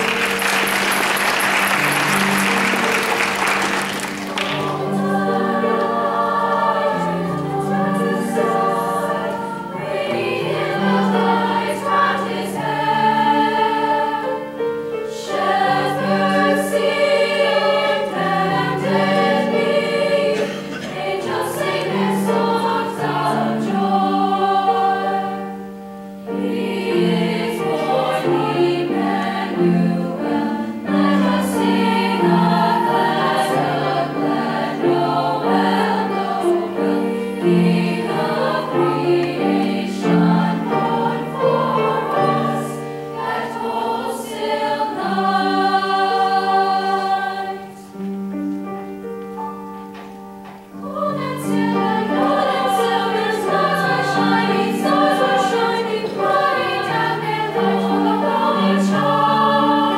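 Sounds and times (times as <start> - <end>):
grand piano accompaniment: 0.0 - 59.9
women's choir singing in harmony: 0.0 - 59.9.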